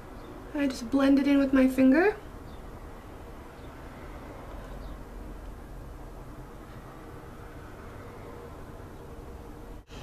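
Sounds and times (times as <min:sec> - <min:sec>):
room noise hum and hiss: 0:00.0 - 0:10.0.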